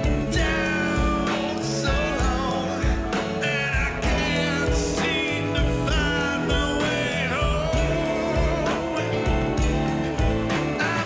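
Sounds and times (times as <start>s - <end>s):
blues band playing: 0.0s - 11.0s.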